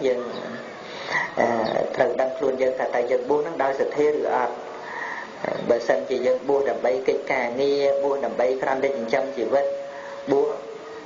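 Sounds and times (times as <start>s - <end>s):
man preaching: 0.0s - 10.8s.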